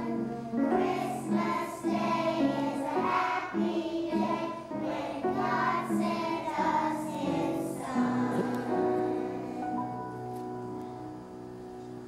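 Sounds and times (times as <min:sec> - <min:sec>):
children singing: 0:00.0 - 0:09.8.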